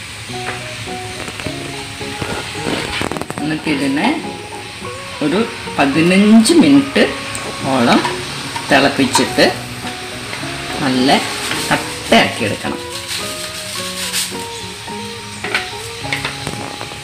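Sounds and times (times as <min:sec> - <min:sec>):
background music: 0:00.0 - 0:17.0
person talking: 0:02.3 - 0:09.7, 0:10.4 - 0:12.9
wooden spoon stirring in steel pot: 0:05.2 - 0:14.7.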